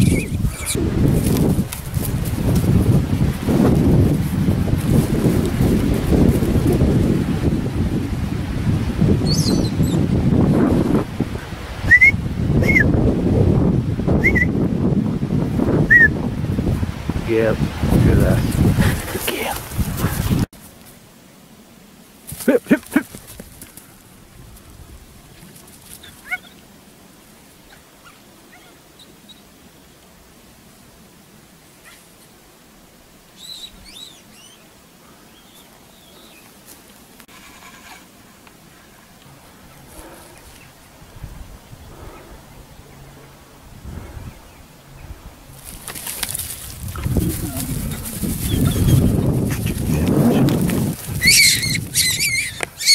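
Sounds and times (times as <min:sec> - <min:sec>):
low rumbling on microphone: 0:00.0 - 0:20.5, 0:39.8 - 0:45.6, 0:46.6 - 0:52.4
dog whining and yelping: 0:51.2 - 0:52.9
rabbit screaming: 0:51.2 - 0:52.9.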